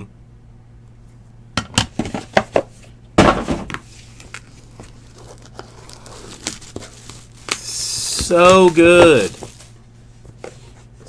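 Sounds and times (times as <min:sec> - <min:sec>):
plastic sleeve crinkling: 0:03.9 - 0:09.8.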